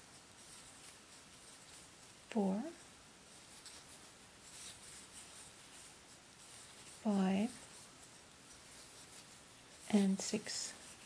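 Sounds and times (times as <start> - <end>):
crochet hook rustling yarn: 0.0 - 11.0
person speaking: 2.3 - 2.8, 6.9 - 7.7, 9.8 - 11.0.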